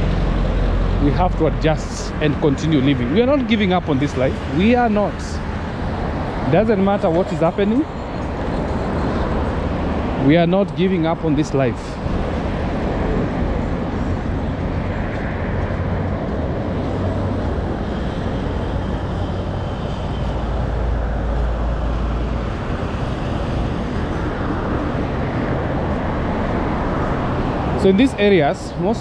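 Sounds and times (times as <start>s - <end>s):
road traffic passing: 0.0s - 29.0s.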